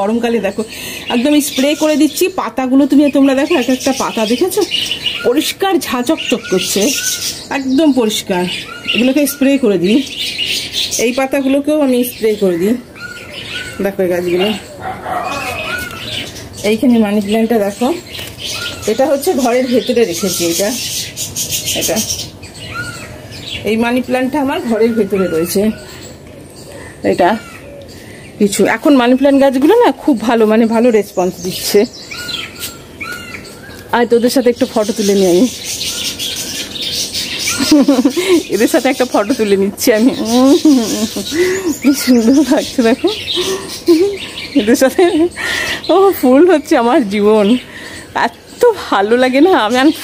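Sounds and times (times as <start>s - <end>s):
woman speaking: 0.0s - 10.2s, 10.9s - 13.0s, 13.6s - 15.9s, 16.6s - 18.1s, 18.8s - 20.9s, 21.7s - 22.2s, 23.6s - 26.0s, 27.0s - 27.6s, 28.4s - 32.0s, 33.9s - 35.6s, 37.6s - 50.0s
birds chirping: 0.0s - 50.0s.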